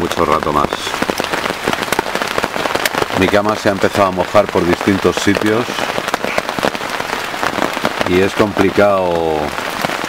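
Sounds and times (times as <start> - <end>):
heavy rain on tent fabric: 0.0 - 10.0.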